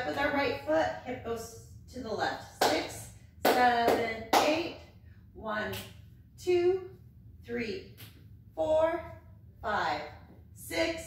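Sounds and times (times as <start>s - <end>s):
woman counting aloud: 8.6s - 11.0s.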